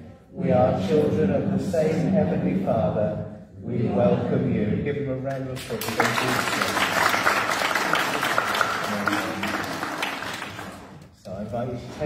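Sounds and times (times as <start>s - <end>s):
congregation applauding: 5.6s - 11.1s.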